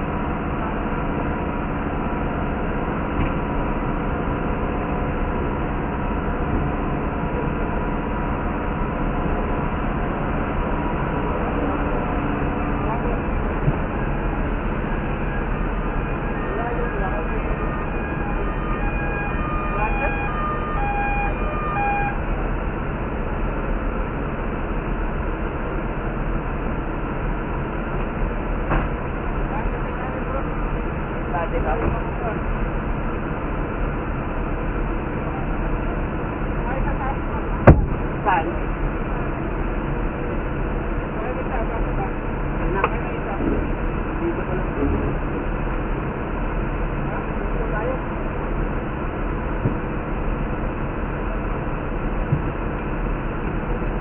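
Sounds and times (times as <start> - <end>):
diesel engines idling: 0.0 - 54.0
short electronic beeps: 16.5 - 22.2.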